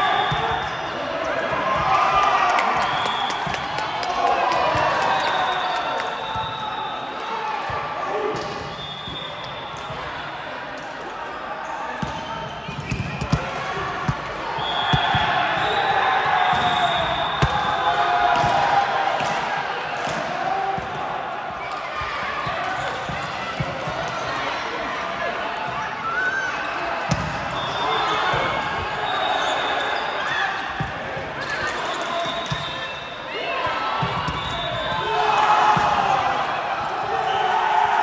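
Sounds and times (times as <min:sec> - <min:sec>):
players shouting in a hall: 0:00.0 - 0:38.0.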